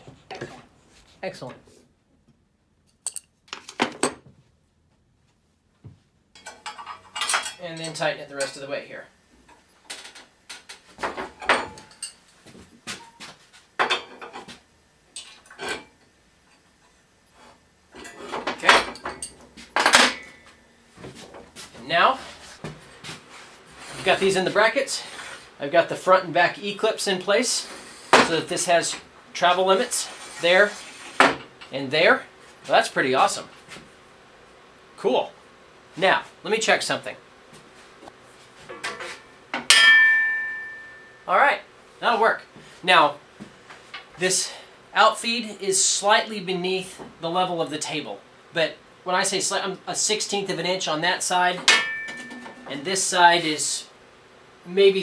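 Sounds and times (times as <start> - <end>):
metal table clank ringing: 18.6 - 20.5, 39.6 - 41.2, 51.6 - 52.7.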